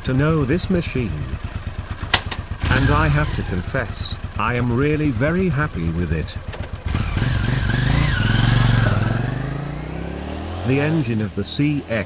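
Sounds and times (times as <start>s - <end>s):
motorcycle engine riding off: 0.0s - 11.1s.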